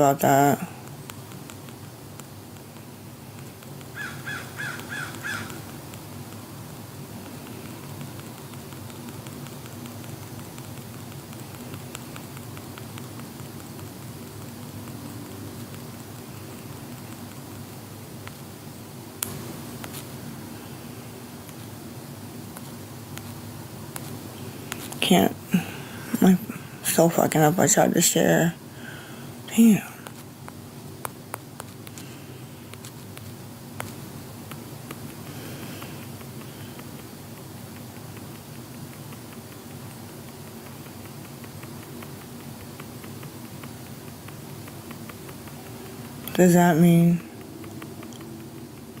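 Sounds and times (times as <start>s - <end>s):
low room tone hum: 0.0s - 49.0s.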